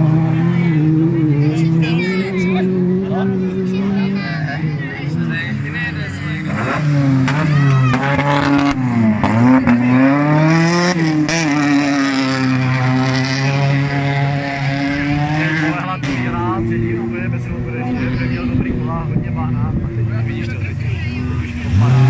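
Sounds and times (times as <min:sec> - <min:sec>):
race car engine at high revs: 0:00.0 - 0:22.0.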